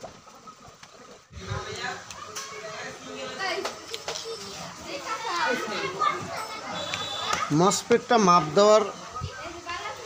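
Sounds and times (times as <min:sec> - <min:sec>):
children talking and playing: 0:00.0 - 0:10.0.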